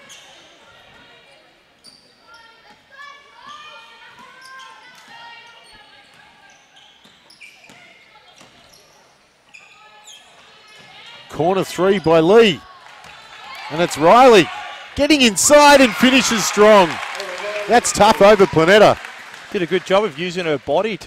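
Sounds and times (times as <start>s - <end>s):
sneaker squeaks: 0.0s - 1.1s, 1.8s - 11.3s.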